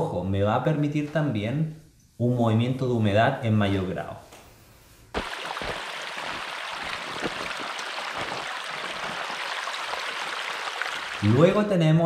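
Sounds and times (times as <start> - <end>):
mountain stream running: 5.2 - 11.5.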